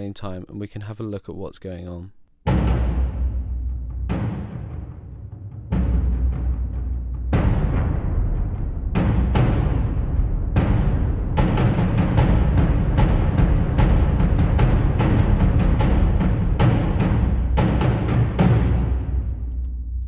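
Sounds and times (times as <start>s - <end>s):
heavy reverberant drum hits: 2.5s - 19.2s.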